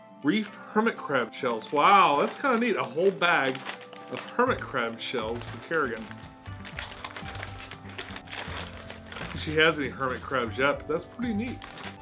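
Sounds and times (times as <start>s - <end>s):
faint background music: 0.0s - 12.0s
plastic bag crinkling: 0.3s - 12.0s.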